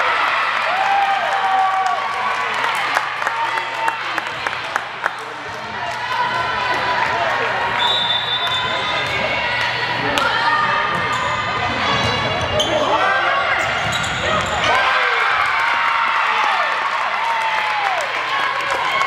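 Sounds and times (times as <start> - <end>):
spectators chattering and shouting: 0.0 - 19.0
sneakers squeaking: 10.6 - 14.7.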